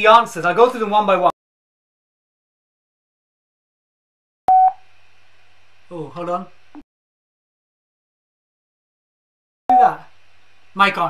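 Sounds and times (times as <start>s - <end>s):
faint steady hum: 4.5s - 6.8s, 9.7s - 11.0s.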